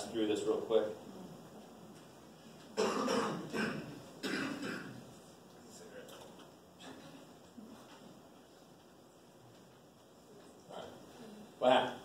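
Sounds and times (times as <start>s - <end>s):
person coughing: 2.8s - 5.1s.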